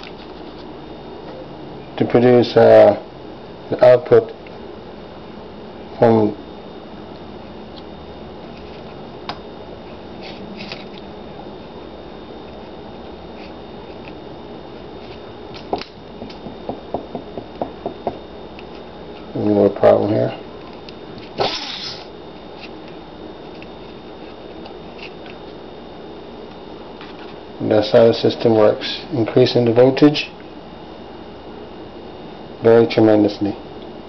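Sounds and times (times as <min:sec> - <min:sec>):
small pulse motor running: 0:21.2 - 0:22.7
motor whirring: 0:21.4 - 0:22.1.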